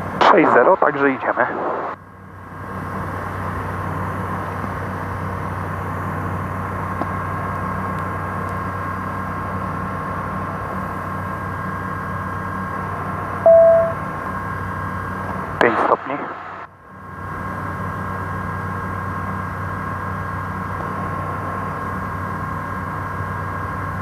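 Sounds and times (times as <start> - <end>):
small plane engine drone: 0.0 - 24.0
short beep: 13.4 - 14.0.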